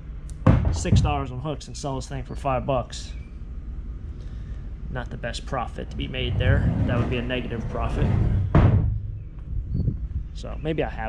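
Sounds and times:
heavy thump with low rumble: 0:00.4 - 0:01.4, 0:05.8 - 0:10.3.

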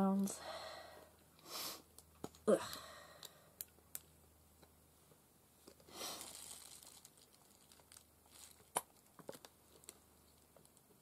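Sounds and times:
crinkling rustle: 0:05.6 - 0:11.0.

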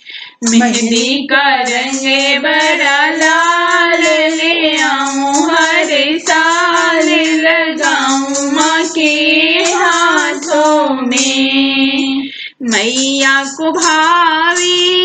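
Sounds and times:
rhythmic accompaniment: 0:00.0 - 0:15.0
woman singing devotional song: 0:00.0 - 0:15.0.

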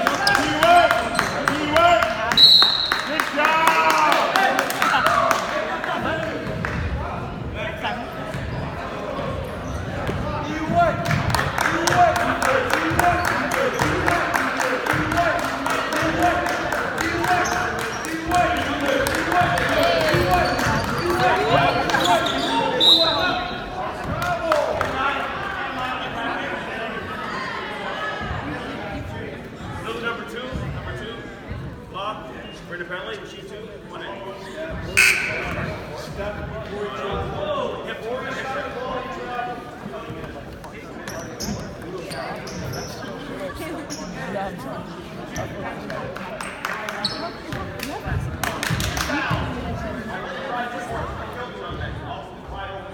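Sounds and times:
sneakers squeaking: 0:00.0 - 0:03.2, 0:08.0 - 0:11.2, 0:12.9 - 0:14.2, 0:17.2 - 0:23.8, 0:34.7 - 0:36.5, 0:41.0 - 0:43.2, 0:43.8 - 0:44.3, 0:46.4 - 0:47.7
spectators talking: 0:00.0 - 0:52.9
voices echoing in a hall: 0:00.0 - 0:52.9.

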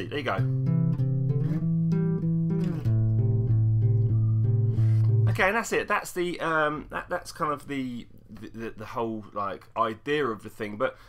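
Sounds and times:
electric bass plucked fingerstyle: 0:00.0 - 0:05.5.

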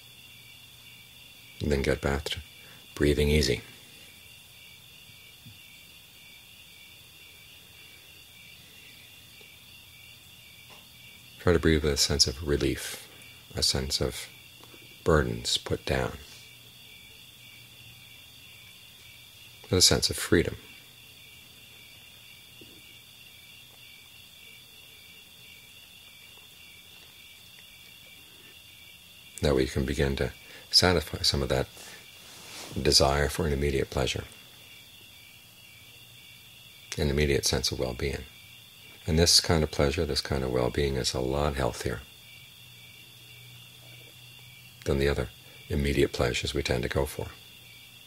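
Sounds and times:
crickets chirring: 0:00.0 - 0:48.0.

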